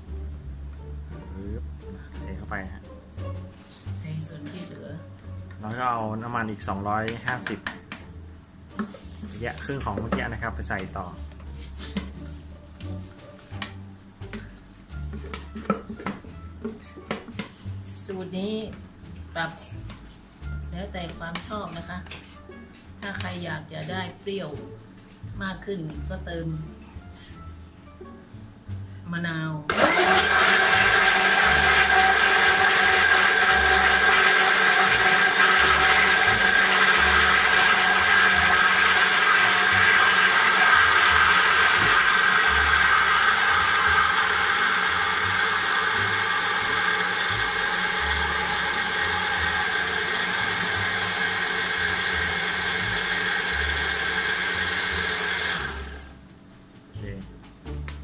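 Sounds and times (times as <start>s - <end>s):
electric blender running: 29.7s - 56.2s.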